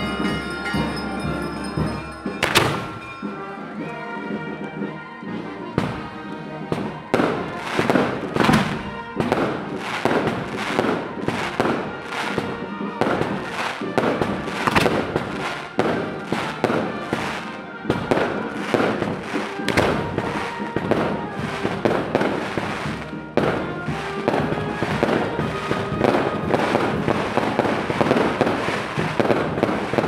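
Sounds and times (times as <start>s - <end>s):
fireworks bangs: 0.0s - 5.0s, 5.7s - 30.0s
firecrackers crackling: 0.0s - 30.0s
music playing: 0.0s - 30.0s.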